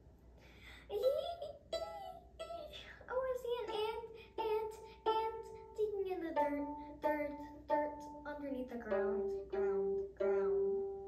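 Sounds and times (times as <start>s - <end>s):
girl singing: 0.6s - 11.0s.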